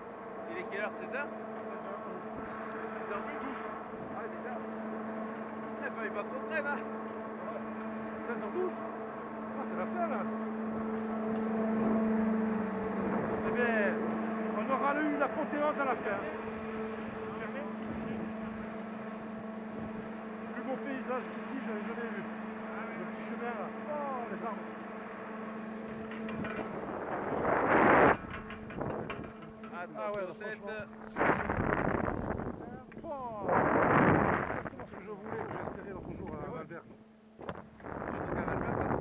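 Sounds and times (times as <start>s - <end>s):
chairlift machinery humming: 0.0s - 39.0s
rush of noise on microphone: 25.9s - 29.5s, 30.8s - 36.5s, 37.4s - 39.0s.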